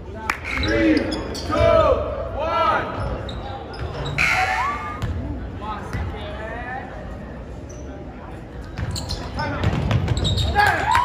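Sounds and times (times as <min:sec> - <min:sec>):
sneakers squeaking: 0:00.4 - 0:02.0, 0:02.8 - 0:06.1, 0:07.6 - 0:10.8.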